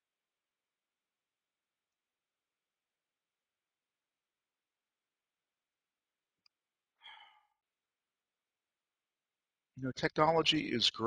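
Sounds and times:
person sighing: 7.0s - 7.6s.

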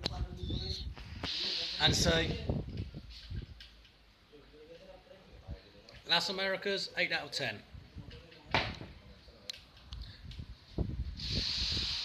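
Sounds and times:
steady hiss: 0.9s - 3.5s, 10.6s - 12.0s.

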